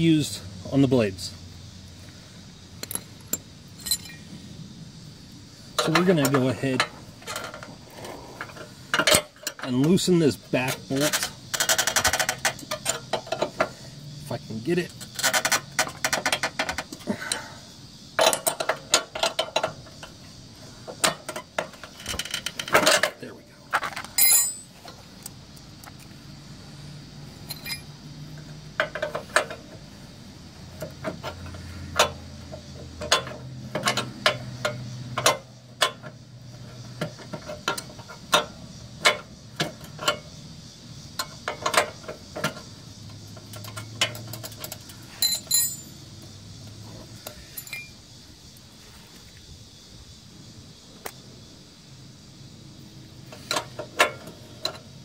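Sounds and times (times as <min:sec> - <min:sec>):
metal tools clinking: 0:02.8 - 0:04.3, 0:23.8 - 0:25.0, 0:27.4 - 0:28.0, 0:43.4 - 0:46.0, 0:47.3 - 0:48.0.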